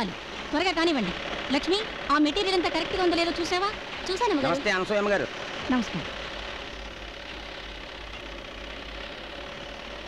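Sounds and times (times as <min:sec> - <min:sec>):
sewing machines whirring: 0:00.1 - 0:10.0.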